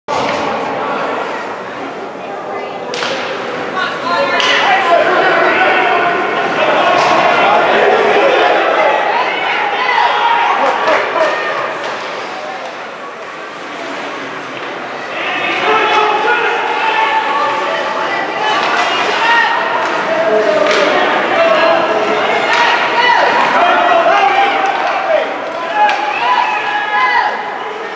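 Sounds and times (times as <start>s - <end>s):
spectators talking and calling out: 0.1s - 27.9s
hockey sticks cracking on puck: 2.9s - 3.4s, 4.3s - 4.8s, 18.2s - 21.2s, 22.1s - 26.3s
puck hitting the boards: 19.8s - 21.0s.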